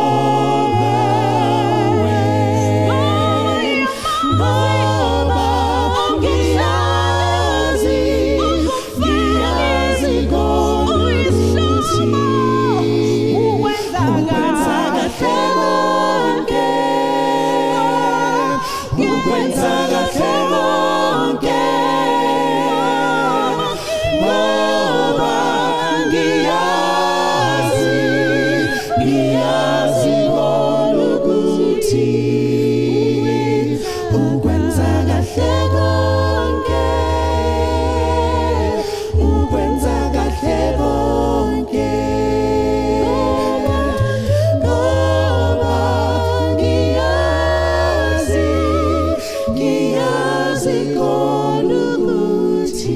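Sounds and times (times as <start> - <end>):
a cappella group singing in harmony: 0.0 - 52.9.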